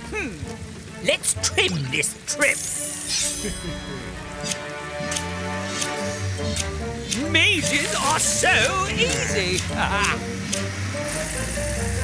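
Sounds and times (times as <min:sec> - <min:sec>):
cartoon background music: 0:00.0 - 0:12.0
sharp snipping clicks: 0:04.4 - 0:07.4, 0:09.0 - 0:10.7.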